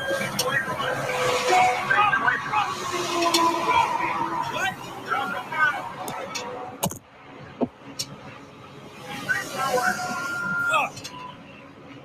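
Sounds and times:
vehicle noise: 0.0 - 12.0.

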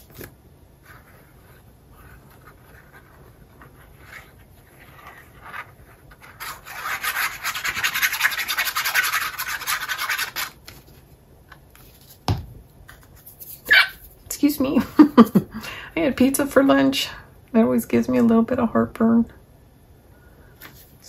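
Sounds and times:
paper rubbing and sliding: 0.0 - 11.1
soft paper rustles: 0.0 - 12.3, 20.6 - 21.0.

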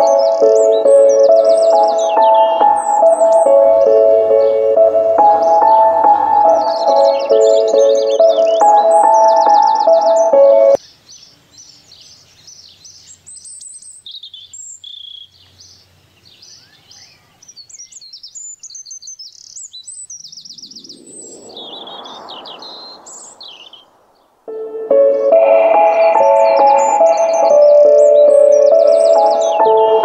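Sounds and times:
ambient music: 0.0 - 10.8, 24.5 - 30.0
small birds chirping: 0.0 - 30.0
soft rushing noise: 20.4 - 24.9.

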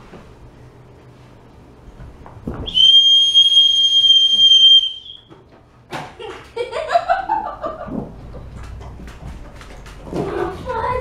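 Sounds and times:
dog whistle blast: 2.7 - 5.3.

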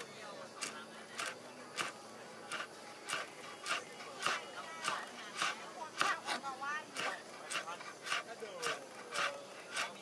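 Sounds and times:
knife chopping greens on a board: 0.6 - 10.0.

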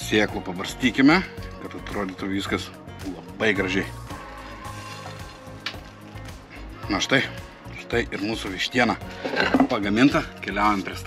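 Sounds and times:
faint background music: 0.0 - 11.0
seeds sprinkling patter: 4.5 - 6.3.

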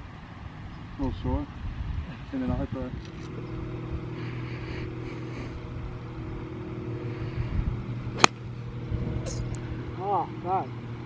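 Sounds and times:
low mechanical hum: 0.0 - 11.0
golf club striking ball: 8.1 - 8.6.

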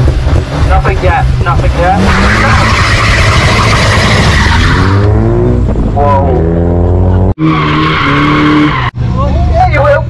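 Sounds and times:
car engine revving: 0.0 - 9.2.

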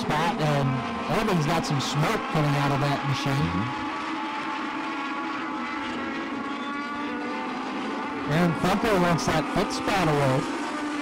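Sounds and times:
racing car engines at high revs: 0.0 - 11.0.

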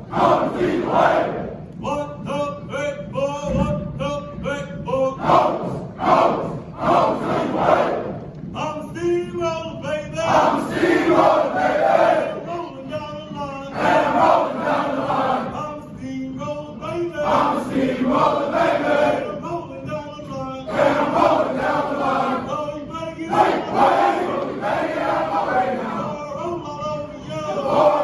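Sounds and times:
soldiers chanting and singing: 0.0 - 28.0.

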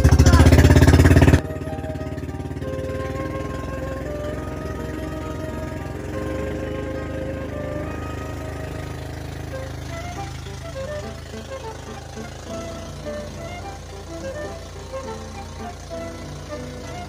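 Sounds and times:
background music: 0.0 - 17.0
boat engine running: 0.0 - 17.0.

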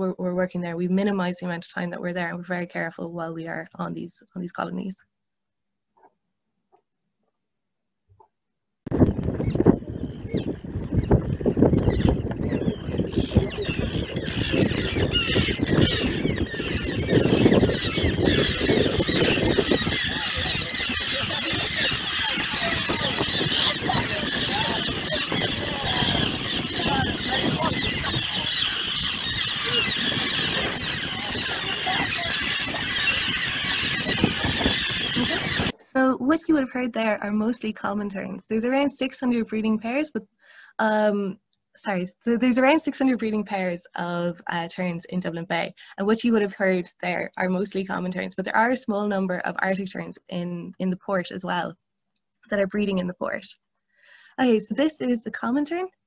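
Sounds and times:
wind: 8.9 - 35.8
terns calling: 9.1 - 35.8.

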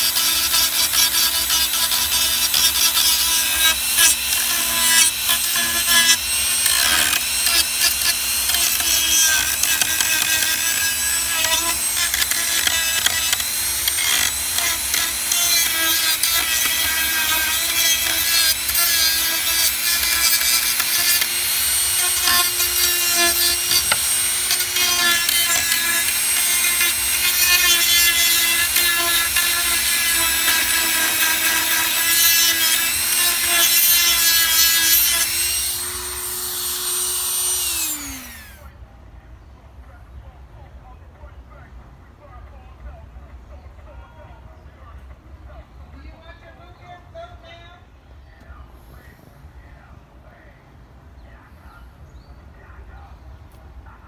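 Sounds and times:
rotary tool sanding with high whine: 0.0 - 38.7.

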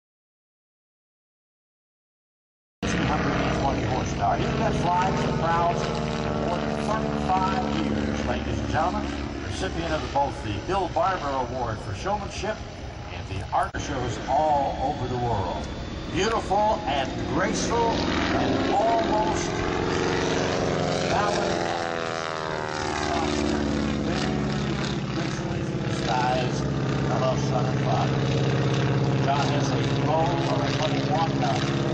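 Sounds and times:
announcer speaking: 2.8 - 20.3, 21.0 - 21.8, 22.8 - 28.2, 29.2 - 31.7
biplane engine and propeller: 2.8 - 31.9.

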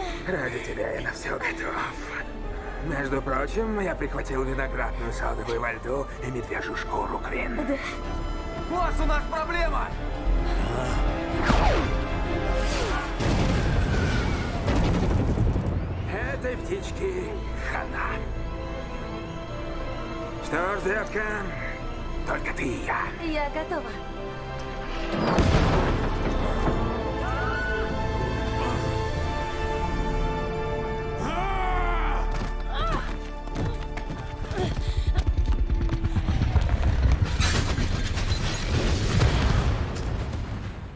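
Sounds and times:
driving action music: 0.0 - 31.5
heavy crashing boom: 25.3 - 26.4, 36.4 - 40.9.

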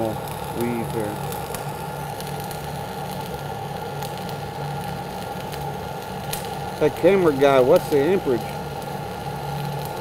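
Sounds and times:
welding arc sizzle with crackles: 0.0 - 10.0.

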